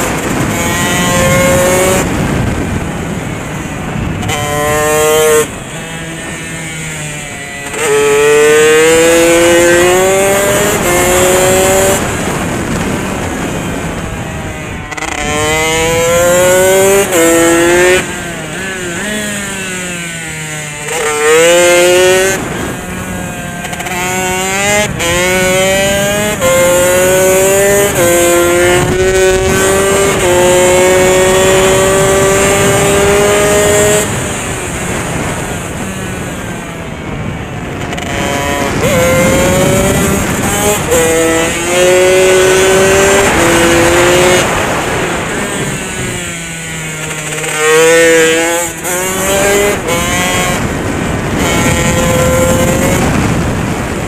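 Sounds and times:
motorcycle engine accelerating: 0:00.0 - 0:54.0.

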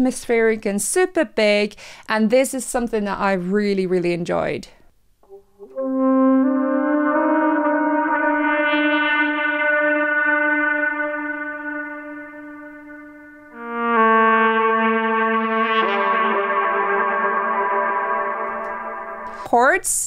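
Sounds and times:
reverberant saxophone held notes: 0:05.2 - 0:19.5.

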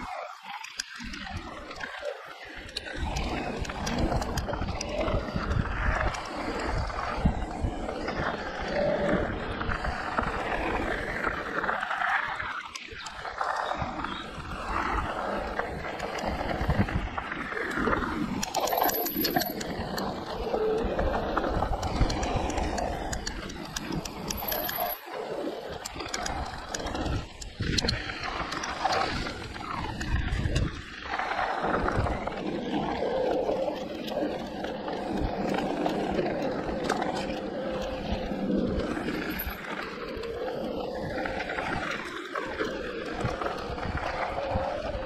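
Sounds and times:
bike rattles and ticks: 0:00.0 - 0:45.0
wind buffeting microphone: 0:02.6 - 0:18.6, 0:25.6 - 0:45.0.

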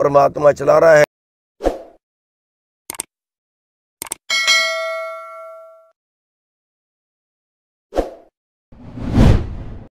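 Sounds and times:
whoosh: 0:08.8 - 0:09.9.

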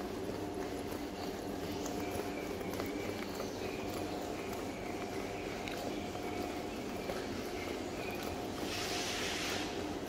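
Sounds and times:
flywheel whirring: 0:00.0 - 0:10.0.

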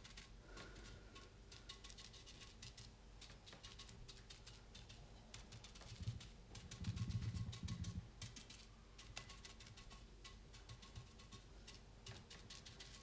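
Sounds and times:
paintbrush tapping on fiberglass: 0:00.0 - 0:13.0.

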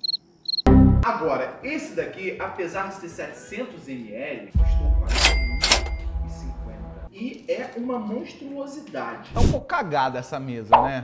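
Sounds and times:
cash register ka-ching: 0:05.2 - 0:06.0.

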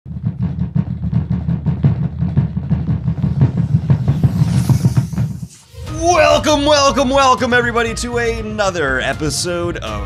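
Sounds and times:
fists pounding on desktop: 0:00.1 - 0:04.4.

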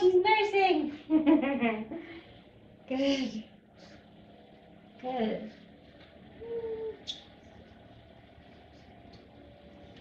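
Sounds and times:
distant garden equipment drone: 0:00.0 - 0:10.0
person humming: 0:06.4 - 0:07.2.

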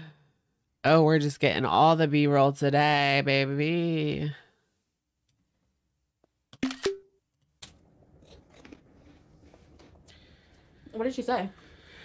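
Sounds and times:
crunchy snack being chewed: 0:07.6 - 0:10.1.

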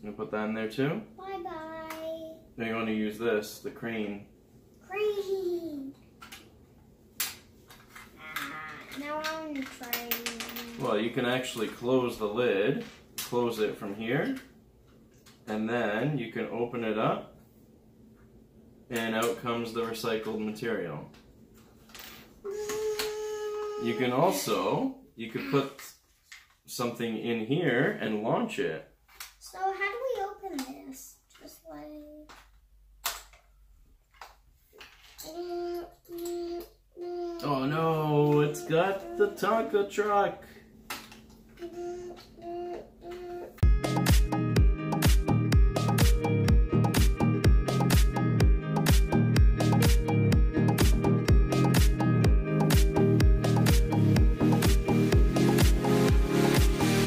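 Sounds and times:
child making play sounds: 0:01.2 - 0:02.5, 0:04.8 - 0:06.0, 0:08.1 - 0:10.9, 0:22.4 - 0:24.6, 0:25.2 - 0:26.0, 0:29.4 - 0:32.4, 0:35.2 - 0:39.8, 0:41.6 - 0:43.6.

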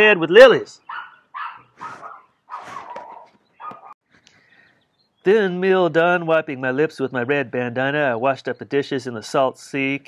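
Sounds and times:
dog barking faintly: 0:00.9 - 0:04.0.

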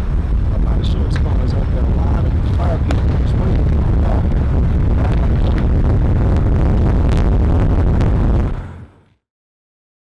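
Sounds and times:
sharp crackles and pops: 0:00.0 - 0:08.6
low rumble: 0:00.0 - 0:09.2.

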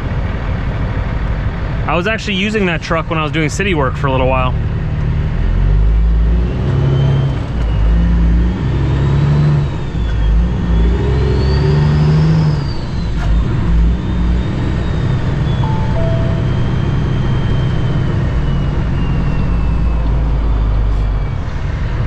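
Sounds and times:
diesel truck engine shifting gears: 0:02.8 - 0:15.7.

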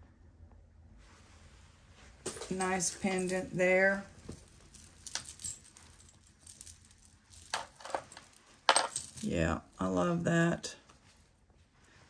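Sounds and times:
metal jewelry chains clinking: 0:02.2 - 0:10.0.

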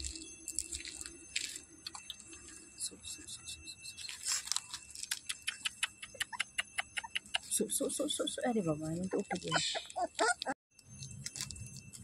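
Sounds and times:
faint steady high tone: 0:00.0 - 0:12.0.

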